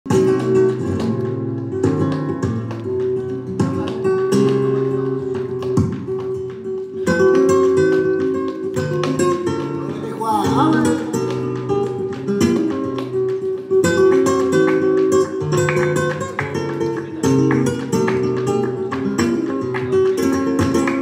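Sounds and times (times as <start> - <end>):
flamenco guitar playing: 0.1 - 21.0
hand clapping: 0.1 - 21.0.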